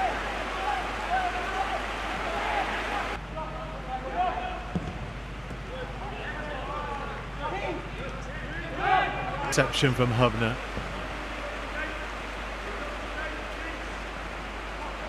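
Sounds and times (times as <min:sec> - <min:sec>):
players shouting: 0:00.0 - 0:03.2, 0:05.8 - 0:15.0
background hiss: 0:00.0 - 0:03.4, 0:09.4 - 0:15.0.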